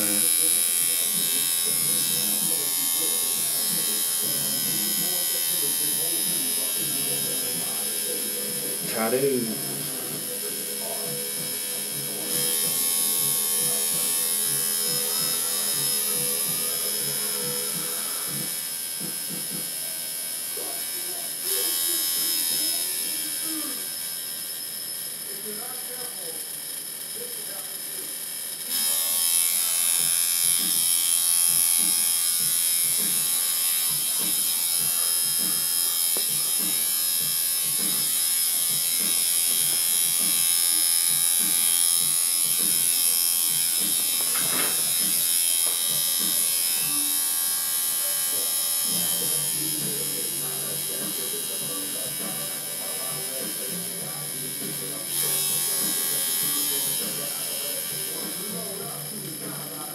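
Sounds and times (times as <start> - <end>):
tattoo machine buzzing: 0.0 - 59.9.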